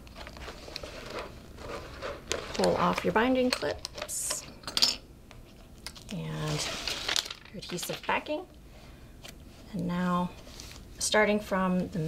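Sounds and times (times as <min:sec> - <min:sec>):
paper binder rustling: 0:00.0 - 0:04.1, 0:06.3 - 0:08.4.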